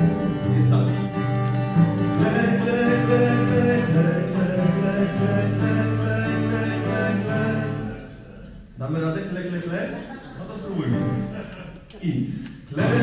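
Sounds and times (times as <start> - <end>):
man singing: 0.0 - 1.3, 2.0 - 8.4, 12.6 - 13.0
acoustic guitar: 0.0 - 8.8, 10.0 - 13.0.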